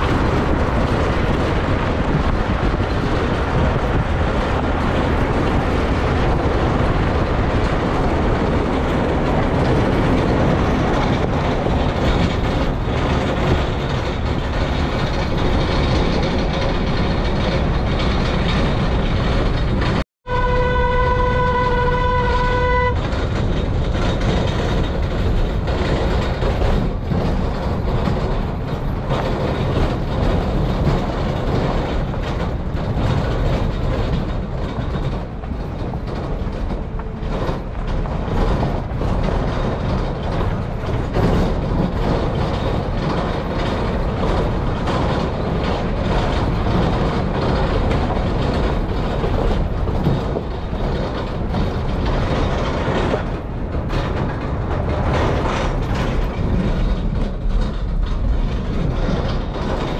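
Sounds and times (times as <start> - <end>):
vehicle driving on dirt road: 0.0 - 59.9
vehicle horn: 20.3 - 23.0.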